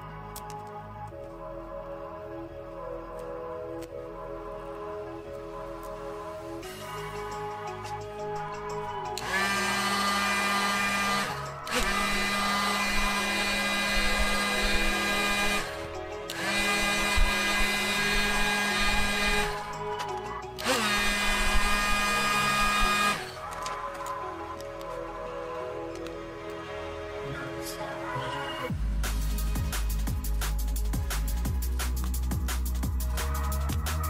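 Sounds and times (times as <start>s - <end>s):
background music: 0.0s - 34.0s
heat gun fan whine: 6.8s - 24.0s.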